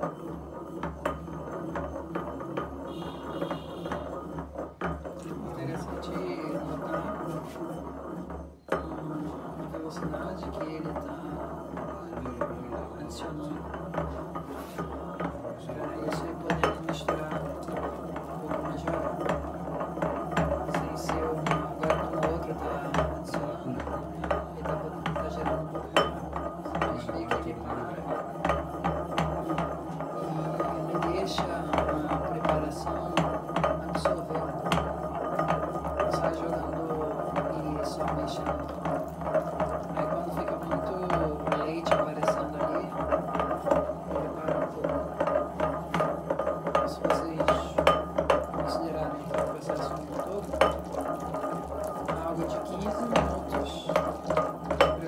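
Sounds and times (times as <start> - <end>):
pestle knocking in mortar: 0.0 - 55.0.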